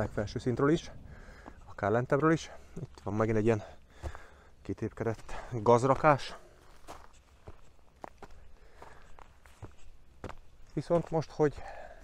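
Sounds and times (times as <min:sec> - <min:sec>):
footsteps on gravel: 0:00.0 - 0:12.0.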